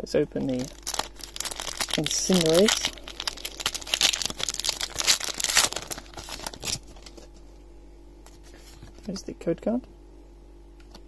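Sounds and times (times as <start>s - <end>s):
foil wrapper tearing and crinkling: 0.4s - 7.3s.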